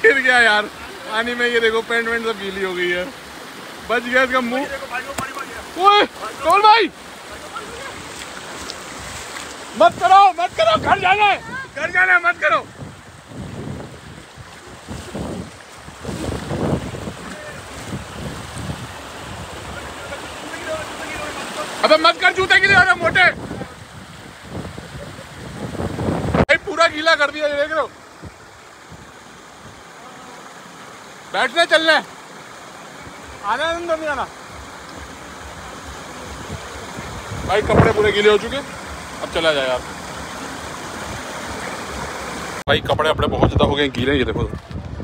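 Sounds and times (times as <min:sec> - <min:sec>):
river flowing over stones: 0:00.0 - 0:42.7
mountain stream rushing: 0:00.0 - 0:45.0
water splashed by hand: 0:04.9 - 0:10.2
wind buffeting microphone: 0:08.9 - 0:21.0, 0:22.4 - 0:26.8, 0:35.0 - 0:39.1, 0:42.7 - 0:45.0.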